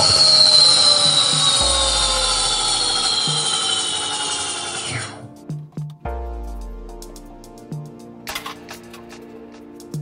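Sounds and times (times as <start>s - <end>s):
electric motor whining: 0.0s - 5.3s
music with deep bass beat: 1.2s - 3.5s, 5.3s - 10.0s.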